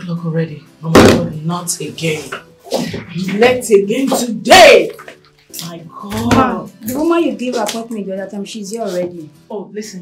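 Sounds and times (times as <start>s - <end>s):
woman talking: 5.6s - 10.0s.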